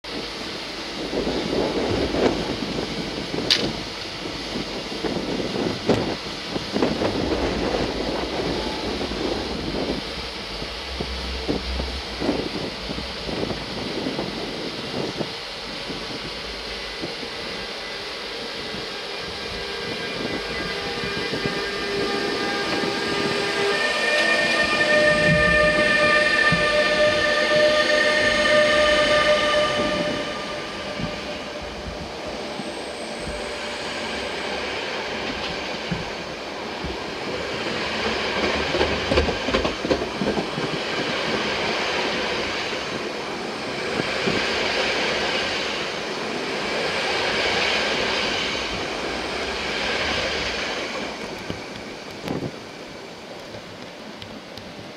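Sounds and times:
electric locomotive whine: 0.0s - 54.9s.

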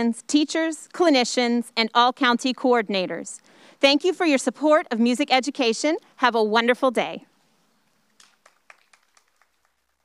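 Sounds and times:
faint scattered handclaps: 7.9s - 10.0s.

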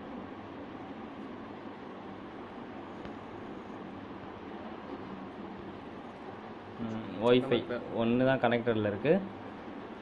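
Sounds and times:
background hiss and hum: 0.0s - 10.0s.

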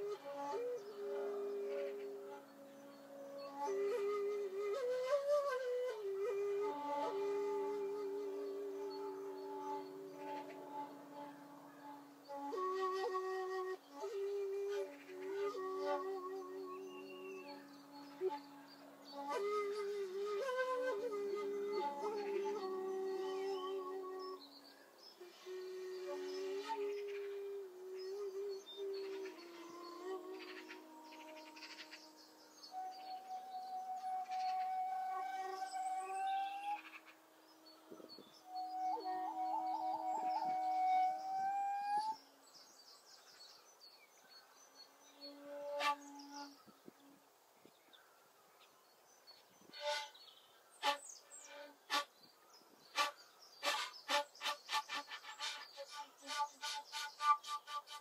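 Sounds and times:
bamboo flutes playing long notes: 0.0s - 42.5s, 45.0s - 47.2s, 49.6s - 58.0s.

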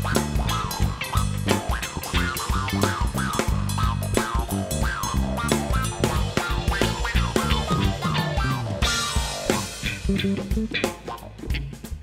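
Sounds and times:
drum kit beat: 0.0s - 12.0s
jazz fusion band playing: 0.0s - 12.0s.

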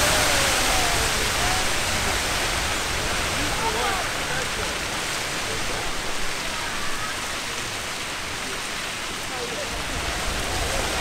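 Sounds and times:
geyser water and steam rushing: 0.0s - 11.0s.

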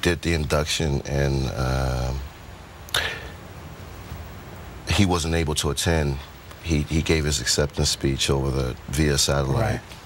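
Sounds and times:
man saying uh: 0.0s - 2.3s, 4.9s - 9.8s
hiss of breath: 2.9s - 3.4s.

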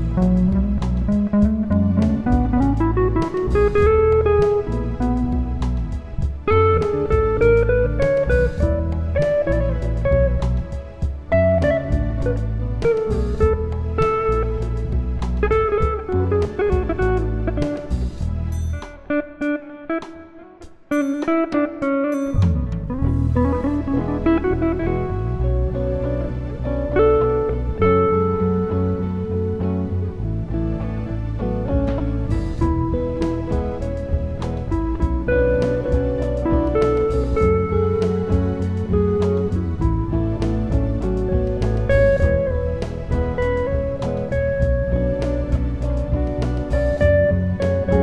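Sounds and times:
bass line: 0.0s - 19.1s, 22.4s - 48.0s
plucked guitar notes: 0.0s - 48.0s.

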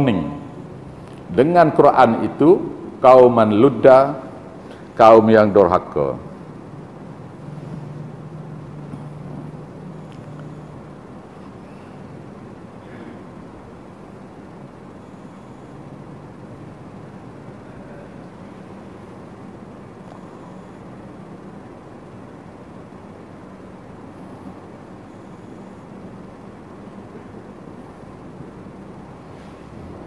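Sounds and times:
room hum and hiss: 0.0s - 30.0s.

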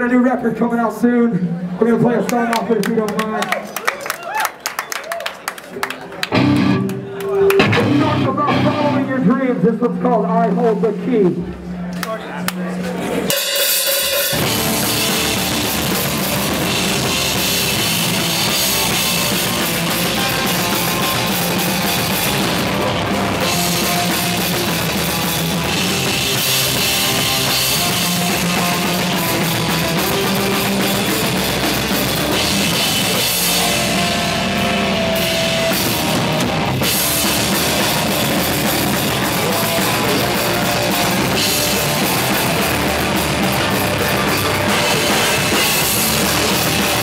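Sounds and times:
hardcore band playing live: 5.8s - 47.0s.

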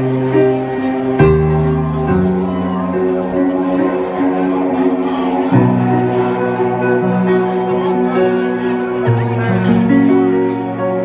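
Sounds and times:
electric guitar sustained chords: 0.0s - 11.0s
keyboard sustained chords: 0.0s - 11.0s.

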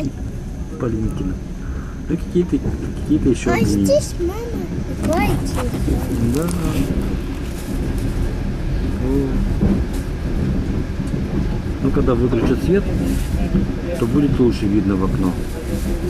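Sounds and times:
train rumbling: 0.0s - 16.0s.

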